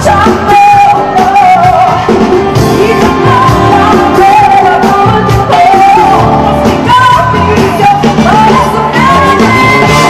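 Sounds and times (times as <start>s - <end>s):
full band playing: 0.0s - 10.0s
woman singing into a microphone: 0.0s - 10.0s.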